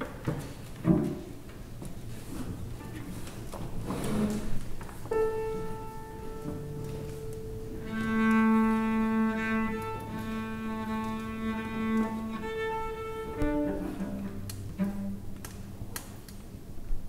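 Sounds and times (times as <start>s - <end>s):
low cello note: 3.9s - 15.5s
bowed strings sustained notes: 5.1s - 15.8s.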